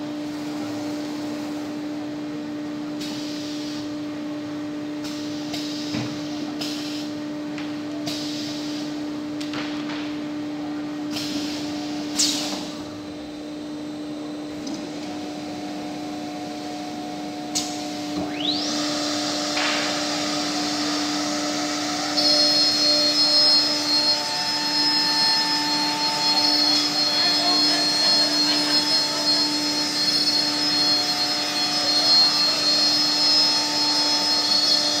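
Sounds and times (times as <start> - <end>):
router and dust extraction hum: 12.5 - 35.0
high-pitched cutting whine: 13.3 - 35.0.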